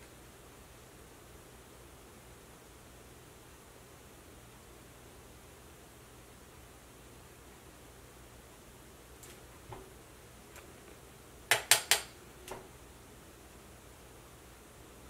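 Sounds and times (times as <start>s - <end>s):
room hiss: 0.0s - 15.0s
sharp clicks: 11.5s - 12.6s.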